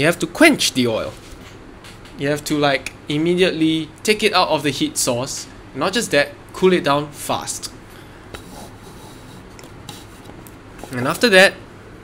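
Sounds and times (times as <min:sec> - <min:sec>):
steady room hiss: 0:00.0 - 0:12.0
hand rubbing on paper: 0:08.4 - 0:11.1.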